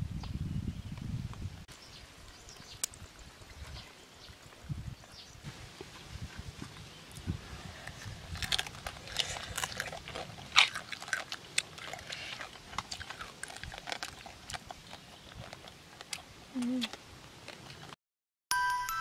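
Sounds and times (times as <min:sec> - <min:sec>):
chewing and slurping: 0:05.8 - 0:18.0.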